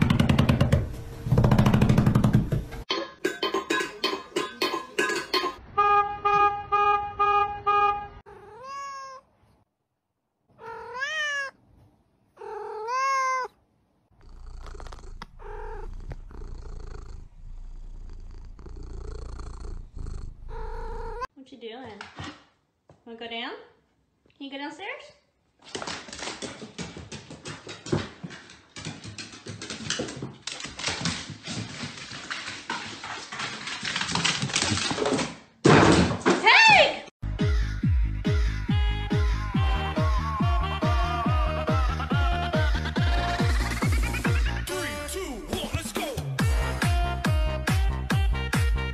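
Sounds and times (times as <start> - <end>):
dog paws tapping down stairs: 0.0 - 2.8, 25.6 - 36.4
cat chirps: 8.3 - 9.3, 10.6 - 11.6, 12.4 - 13.6
cat meowing: 8.3 - 9.3, 10.5 - 11.6, 12.4 - 13.6, 14.8 - 16.4
cat purring: 14.2 - 21.3.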